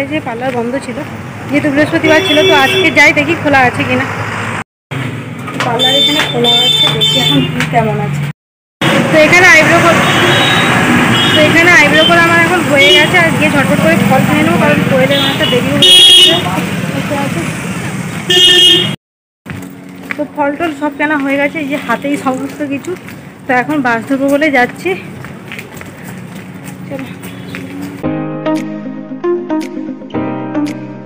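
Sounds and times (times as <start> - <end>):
people talking: 0.0 - 4.1, 5.6 - 8.2, 9.0 - 10.7, 11.3 - 17.5, 20.2 - 25.1, 26.9 - 27.8
street traffic: 0.0 - 28.8
vehicle horn honking: 2.0 - 3.1, 5.8 - 7.6, 9.9 - 13.3, 15.1 - 16.6, 18.3 - 19.0.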